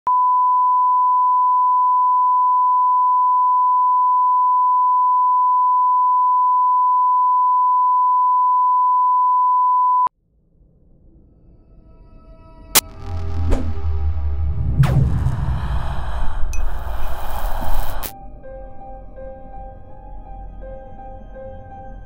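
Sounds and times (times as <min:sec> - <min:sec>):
steady sine wave tone: 0:12.8 - 0:18.2.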